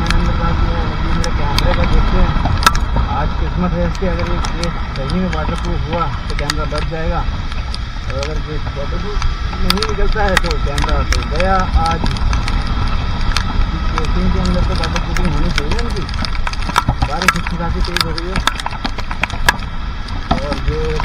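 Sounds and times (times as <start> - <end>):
person talking: 0.0 - 2.4, 3.1 - 7.3, 8.1 - 12.2, 13.7 - 16.2, 17.0 - 18.5, 20.3 - 21.0
motorbike engine running: 0.0 - 21.0
raindrops ticking on camera: 0.0 - 21.0
wind and road rumble: 0.0 - 21.0.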